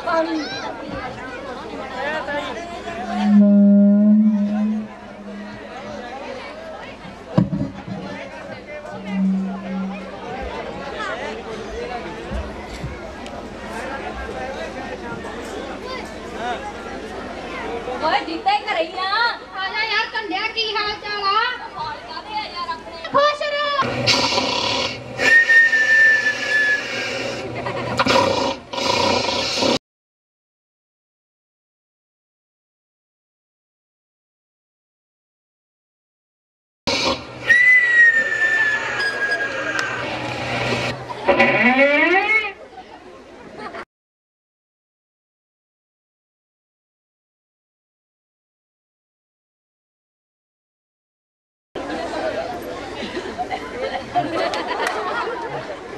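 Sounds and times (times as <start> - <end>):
noisy crowd din: 0.0 - 29.8, 36.9 - 43.8, 51.8 - 55.9
people chattering: 0.0 - 29.8, 36.9 - 43.8, 51.8 - 55.9
high whistle: 25.2 - 27.4, 37.0 - 40.0.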